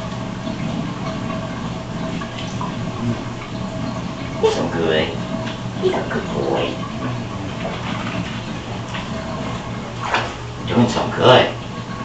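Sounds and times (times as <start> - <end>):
bathtub water draining: 0.0 - 12.0
indistinct voice sounds: 4.4 - 5.2, 5.8 - 7.6.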